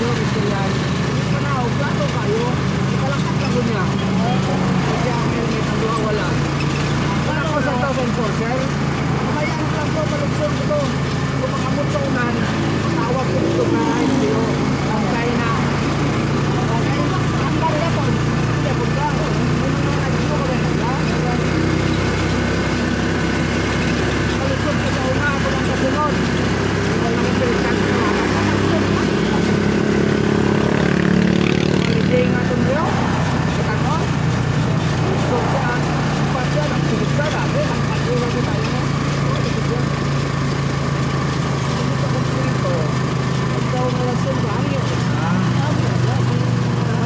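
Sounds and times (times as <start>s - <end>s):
motorcycle engine running: 0.0s - 47.0s.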